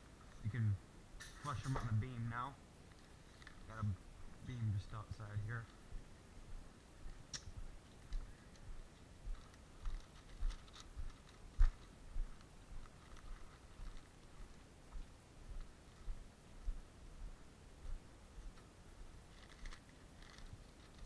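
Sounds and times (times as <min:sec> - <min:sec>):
light clicks and rustles: 0:00.2 - 0:05.9, 0:07.0 - 0:16.2, 0:18.4 - 0:21.0
footsteps on concrete and grass: 0:05.6 - 0:21.0.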